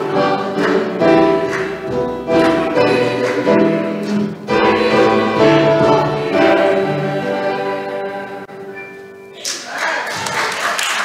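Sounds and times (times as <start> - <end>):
choir singing long notes: 0.0 - 8.8.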